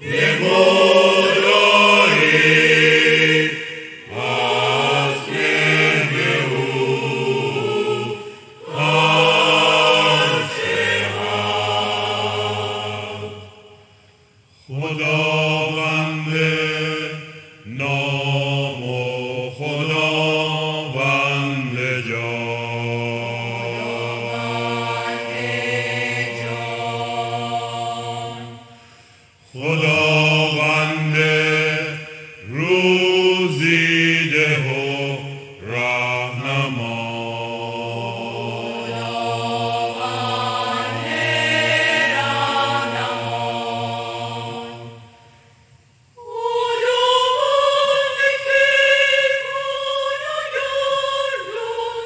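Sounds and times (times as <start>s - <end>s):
mixed choir singing: 0.0s - 14.0s, 14.7s - 45.6s, 46.2s - 52.0s.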